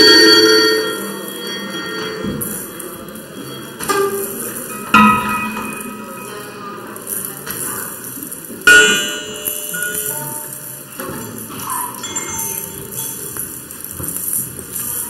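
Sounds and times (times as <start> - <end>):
metallic bell-like ringing tones: 0.0 - 6.8, 8.7 - 13.3
loud struck sound: 8.7 - 10.5.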